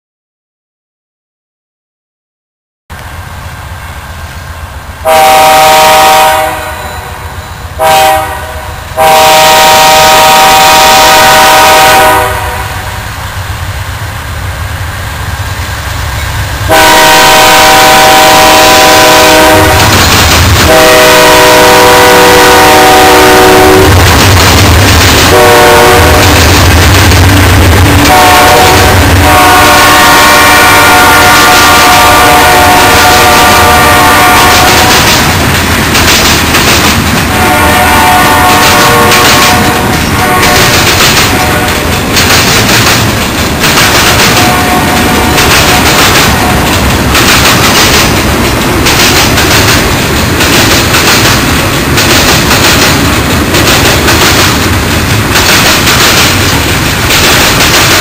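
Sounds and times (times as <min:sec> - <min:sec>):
locomotive horn blasts: 0:05.0 - 0:12.9, 0:16.7 - 0:20.0, 0:20.6 - 0:24.1, 0:25.3 - 0:26.4, 0:28.0 - 0:35.1, 0:37.3 - 0:41.9, 0:44.4 - 0:46.7
freight cars clattering: 0:38.8 - 0:58.0.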